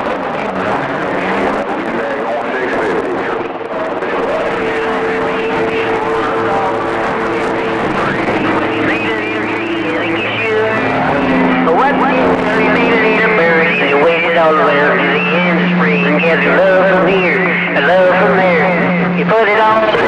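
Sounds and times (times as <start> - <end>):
distant radio stations: 0.0 - 20.0
radio static: 0.0 - 20.0
steady radio tones: 0.0 - 20.0.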